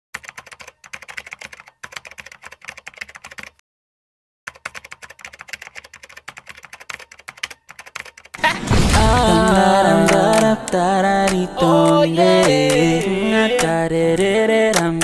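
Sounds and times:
rapid keyboard typing: 0:00.2 - 0:03.6, 0:04.5 - 0:15.0.

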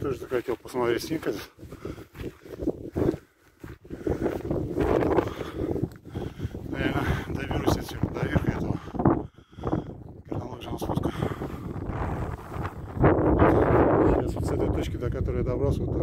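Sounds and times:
man talking indistinctly: 0:00.0 - 0:01.6, 0:06.6 - 0:09.1, 0:10.2 - 0:11.6, 0:13.6 - 0:16.0
wind buffeting microphone: 0:00.0 - 0:16.0.

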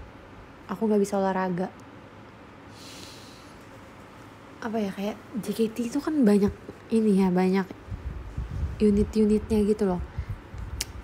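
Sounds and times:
faint room noise: 0:00.0 - 0:11.0
woman breathing: 0:02.7 - 0:03.8.

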